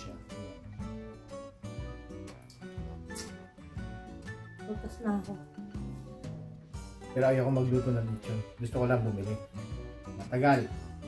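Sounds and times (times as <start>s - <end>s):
plucked acoustic guitar music: 0.0s - 11.0s.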